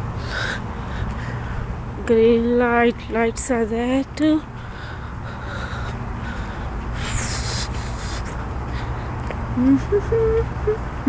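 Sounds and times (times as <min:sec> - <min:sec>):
outdoor background rumble: 0:00.0 - 0:11.0.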